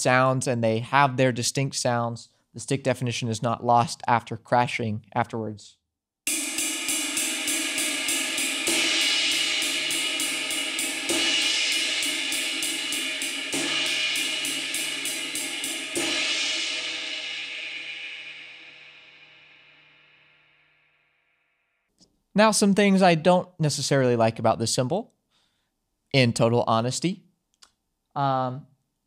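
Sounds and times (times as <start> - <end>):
stick pinging ride cymbal: 6.3 - 20.5
cymbal crash: 6.3 - 21.3.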